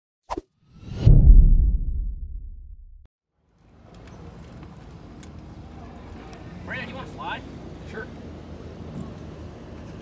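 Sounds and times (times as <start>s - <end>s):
swoosh: 0.3s - 3.1s
deep low hit: 0.8s - 3.1s.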